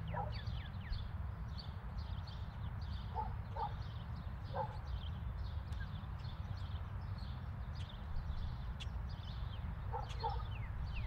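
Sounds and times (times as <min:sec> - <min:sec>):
dog barking: 0:00.1 - 0:00.4, 0:03.2 - 0:03.8, 0:04.5 - 0:04.8, 0:09.9 - 0:10.6.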